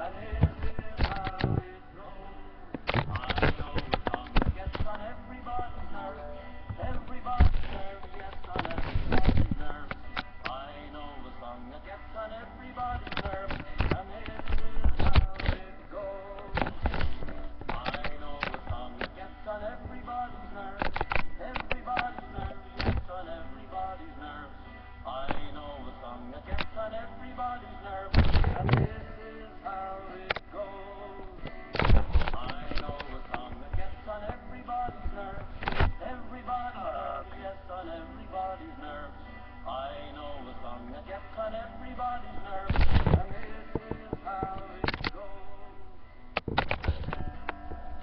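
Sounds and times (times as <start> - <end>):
thumps on microphone: 0.2 - 1.7, 2.8 - 5.0, 6.7 - 10.3, 12.9 - 15.7, 16.4 - 19.2, 28.1 - 29.1, 31.4 - 36.0, 42.7 - 45.2
sharp clicks: 0.4 - 1.7, 2.7 - 5.1, 12.8 - 15.7, 16.3 - 19.2, 20.8 - 23.2, 25.3 - 25.6, 26.5 - 26.8, 31.4 - 36.0, 42.5 - 45.2, 46.4 - 47.6.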